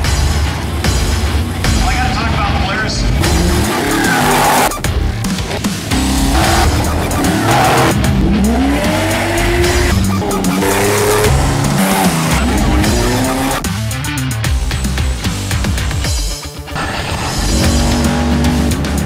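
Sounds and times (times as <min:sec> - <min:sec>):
music soundtrack: 0:00.0 - 0:19.0
race car engines revving: 0:00.0 - 0:19.0.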